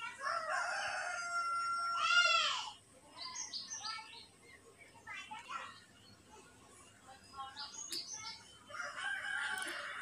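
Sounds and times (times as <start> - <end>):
rooster crowing: 0.2 - 2.0, 8.7 - 10.0.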